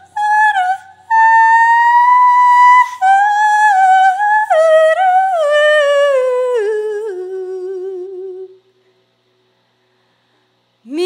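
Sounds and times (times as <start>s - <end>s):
woman singing wordlessly: 0.0s - 8.6s.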